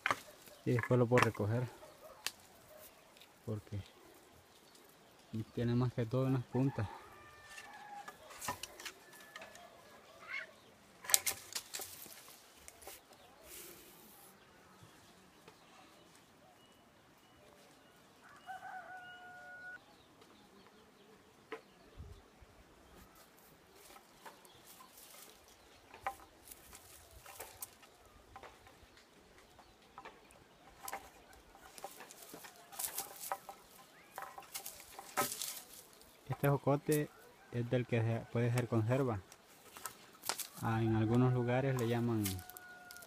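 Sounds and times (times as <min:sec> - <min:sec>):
twigs and leaves rustling: 0:00.0 - 0:20.8, 0:22.8 - 0:43.0
rooster crowing: 0:06.5 - 0:10.3, 0:18.2 - 0:19.8, 0:42.2 - 0:43.0.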